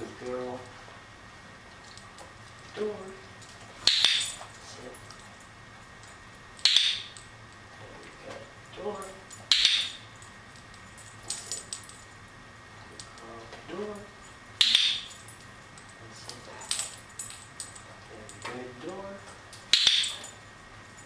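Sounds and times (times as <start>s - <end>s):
dog-training clicker clicking: 9.5s - 10.0s, 19.7s - 20.3s.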